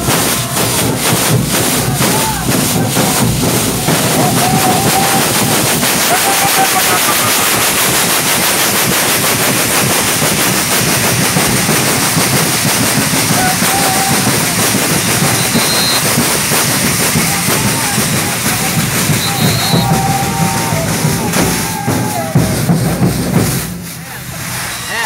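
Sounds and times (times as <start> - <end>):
metal pan rattles shaken: 0.0 - 19.9
drumming: 0.0 - 25.0.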